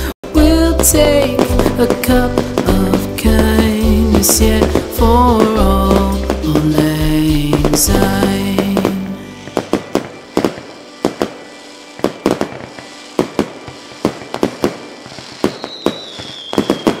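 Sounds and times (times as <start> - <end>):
fireworks bangs and crackles: 0.0 - 17.0
high firework whistle: 0.8 - 17.0.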